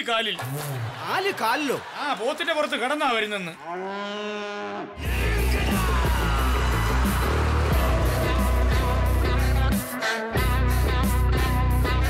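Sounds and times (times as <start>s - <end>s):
loud music with heavy beat: 5.0s - 12.0s.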